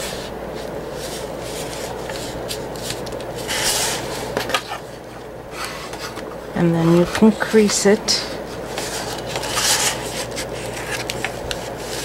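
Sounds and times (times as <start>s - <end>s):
bright paper scrape: 0.0s - 4.5s, 8.7s - 12.0s.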